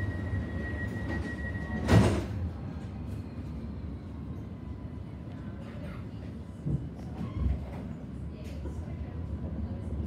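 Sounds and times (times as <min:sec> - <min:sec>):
tram rumbling: 0:00.0 - 0:10.0.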